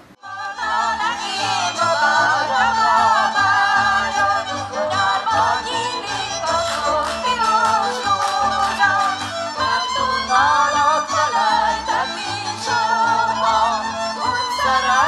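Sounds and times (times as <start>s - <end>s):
string band with walking bass: 0.0s - 15.0s
folk singing: 0.1s - 15.0s.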